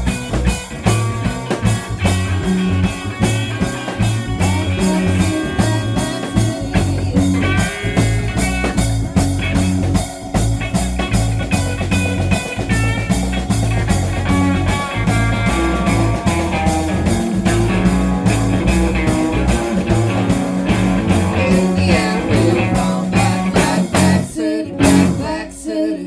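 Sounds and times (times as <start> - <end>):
live rock band playing: 0.0 - 25.6.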